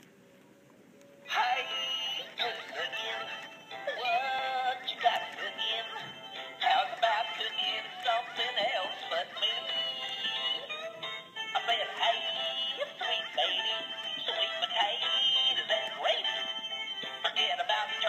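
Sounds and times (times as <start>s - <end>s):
toy singing through small speaker: 1.3s - 18.0s.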